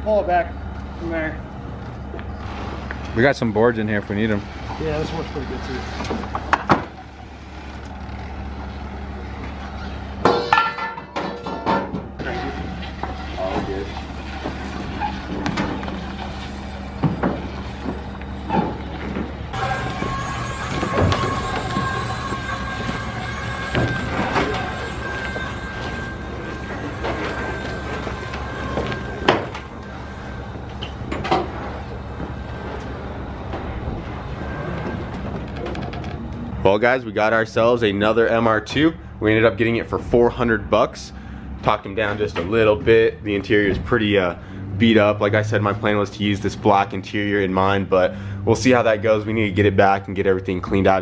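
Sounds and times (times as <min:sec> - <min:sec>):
steady low hum: 0:00.0 - 0:51.0
steady whine-like tone: 0:00.0 - 0:51.0
indistinct voices: 0:12.2 - 0:51.0.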